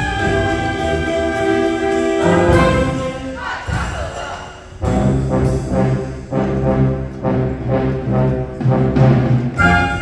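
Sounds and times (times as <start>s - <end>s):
concert band playing brass: 0.0s - 4.2s, 4.8s - 10.0s.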